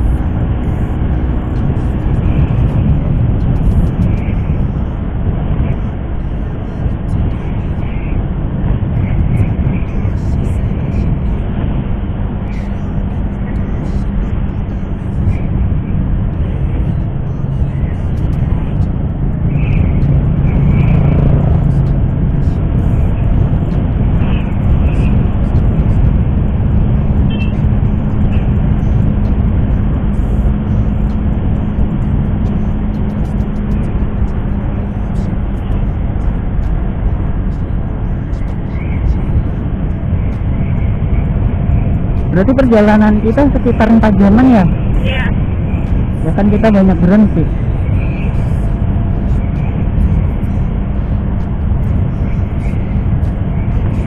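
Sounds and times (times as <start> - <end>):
motorcycle engine running: 0.0 - 54.0
wind rushing over microphone: 0.0 - 54.0.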